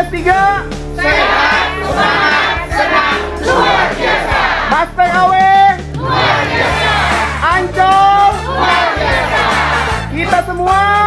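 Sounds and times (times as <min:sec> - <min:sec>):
backing music with bass line: 0:00.0 - 0:11.0
group of voices chanting: 0:01.0 - 0:07.5, 0:08.4 - 0:10.1.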